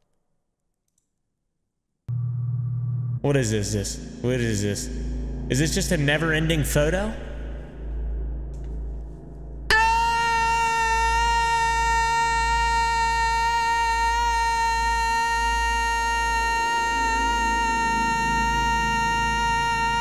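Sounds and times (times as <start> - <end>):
man screaming: 9.7 - 20.0.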